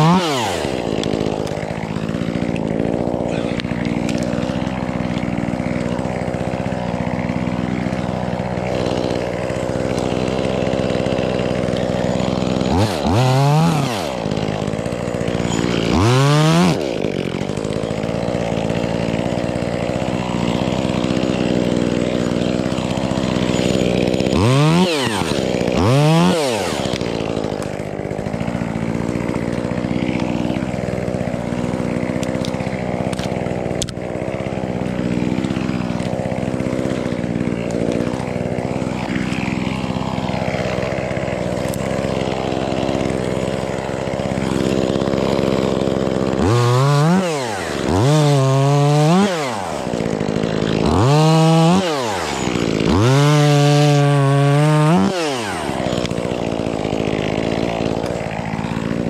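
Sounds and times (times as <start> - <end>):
chainsaw idling and revving: 0.0 - 59.0.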